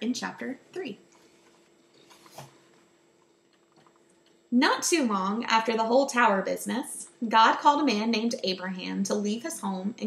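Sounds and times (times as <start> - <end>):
book pages turning: 1.2 - 2.8.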